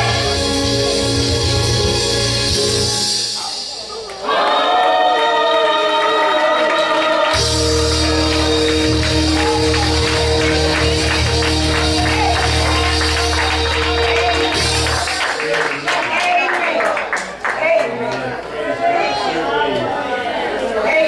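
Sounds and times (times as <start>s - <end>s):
bass line: 0.0s - 3.0s, 7.4s - 15.2s
gospel choir singing: 0.0s - 3.6s, 4.2s - 15.0s
church band playing: 0.0s - 4.5s, 5.8s - 16.0s
tambourine beat: 7.4s - 15.5s.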